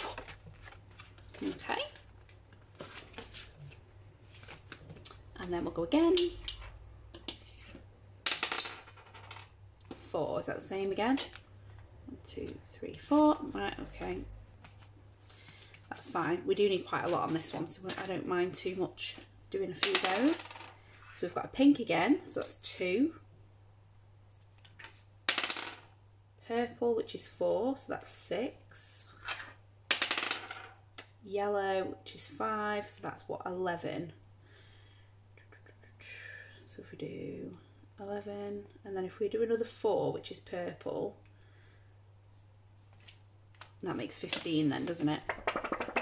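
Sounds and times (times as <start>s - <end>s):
die clattering on tabletop: 8.3s - 9.5s, 25.3s - 25.9s, 29.3s - 30.8s, 45.3s - 46.0s.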